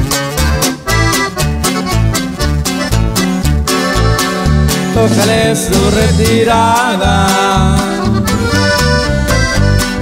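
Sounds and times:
accordion melody: 0.0 - 10.0
bouncing bass line: 0.0 - 10.0
strummed guitar: 0.0 - 10.0.

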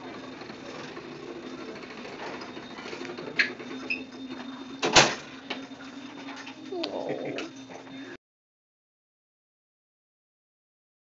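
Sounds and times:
wheeled crib rattling: 0.0 - 4.4.

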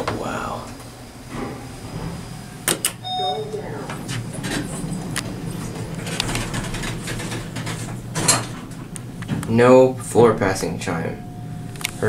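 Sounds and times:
elevator doors sliding closed: 0.0 - 12.0
elevator low hum: 0.0 - 12.0.

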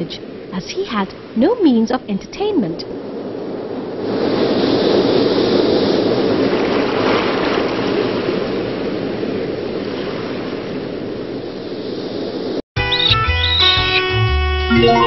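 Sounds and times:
sea waves rushing: 0.0 - 12.6.

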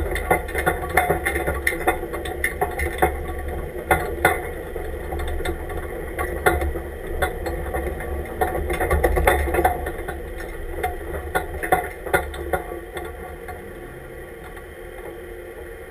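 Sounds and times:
truck engine running at low speed: 0.0 - 15.9.

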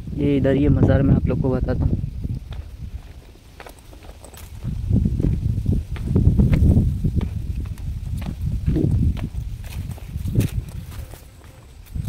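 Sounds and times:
footsteps on stone path: 2.0 - 12.0.

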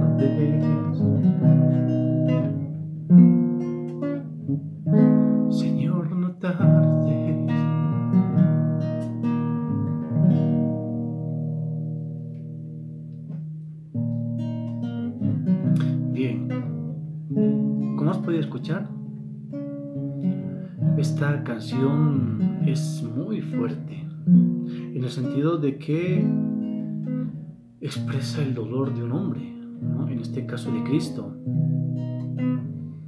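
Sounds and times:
classical guitar strumming chords: 0.0 - 33.0.

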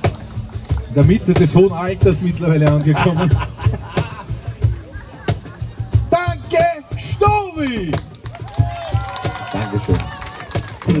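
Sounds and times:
people talking: 0.8 - 3.5, 4.4 - 8.0.

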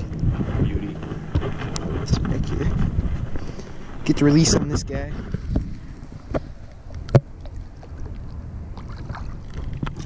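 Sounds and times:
water lapping at boat hull: 0.0 - 10.0
wind on microphone: 0.0 - 10.0.

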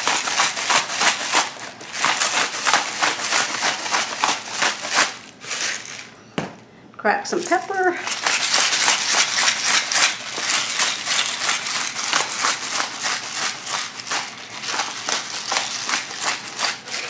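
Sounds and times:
pepper grinder crunching: 0.0 - 6.2, 7.3 - 17.0.

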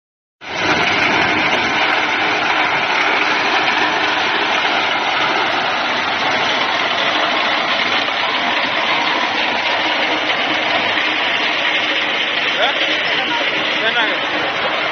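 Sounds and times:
thresher rush and clatter: 0.4 - 14.9.

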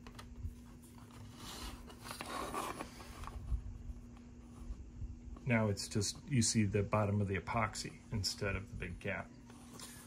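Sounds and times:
plastic rubbing and scraping: 0.0 - 3.7.

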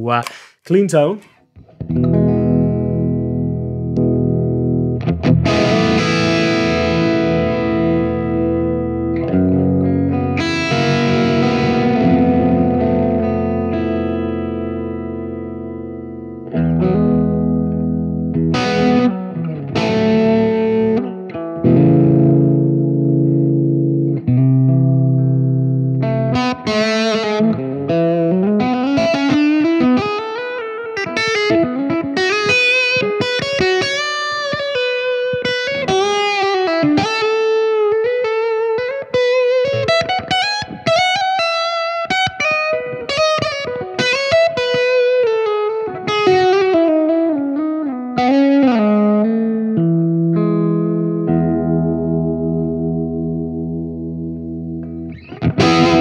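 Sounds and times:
distorted electric guitar: 1.6 - 56.0.

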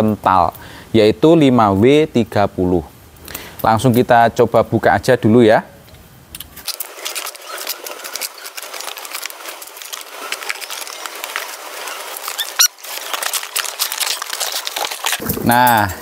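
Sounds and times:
knife cutting packing tape: 6.5 - 16.0
high squeak: 7.0 - 15.7.

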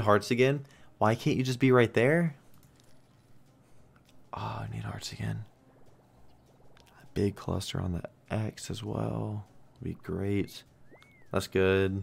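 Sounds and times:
man speaking: 4.3 - 5.5, 7.0 - 10.7, 11.3 - 12.0.

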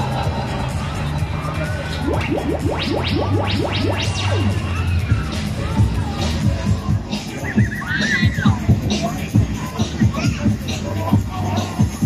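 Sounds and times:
dance music with heavy bass: 0.0 - 12.0.

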